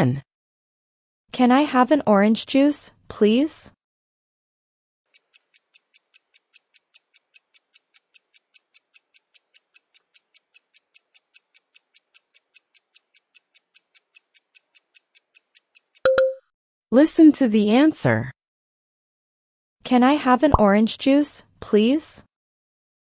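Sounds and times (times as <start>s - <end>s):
quick high timer ticks: 5.1s - 16.4s
short beep: 16.1s - 16.4s.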